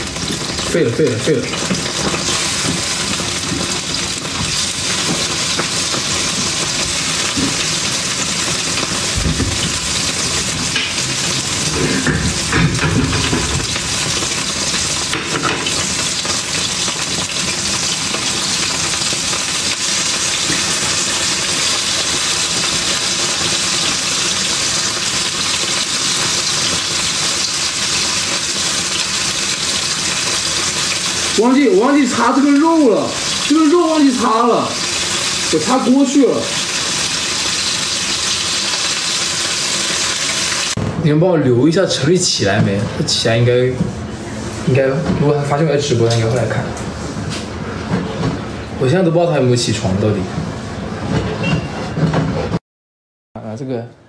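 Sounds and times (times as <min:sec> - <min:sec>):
meat sizzling in hot oil: 0:00.0 - 0:40.8.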